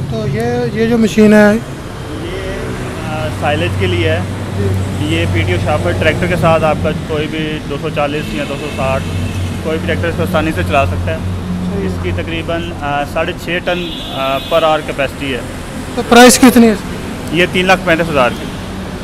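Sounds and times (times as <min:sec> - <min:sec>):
men talking: 0:00.0 - 0:18.7.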